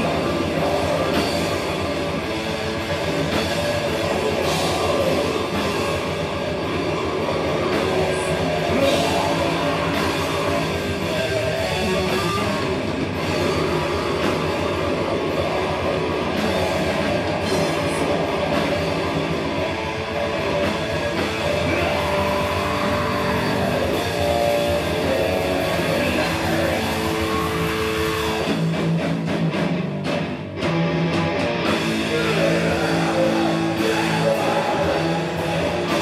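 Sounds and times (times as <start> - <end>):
distorted electric guitars: 0.0 - 36.0
metal band playing: 0.0 - 36.0.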